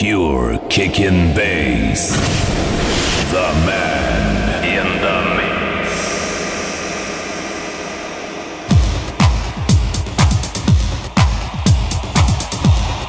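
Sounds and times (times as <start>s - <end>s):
rushing noise effect: 1.8s - 10.1s
house music kick drum: 8.7s - 13.0s.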